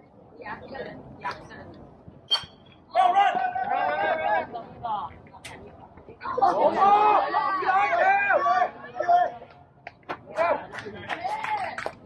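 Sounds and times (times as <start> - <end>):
crowd shouting and cheering: 2.8 - 4.6, 6.2 - 9.6.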